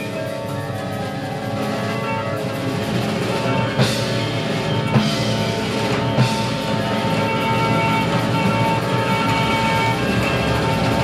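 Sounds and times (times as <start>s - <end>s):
jazz band holding a chord: 0.0s - 11.0s.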